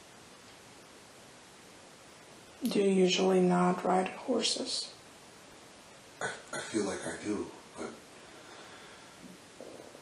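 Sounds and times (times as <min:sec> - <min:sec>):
recording hiss: 0:00.0 - 0:10.0.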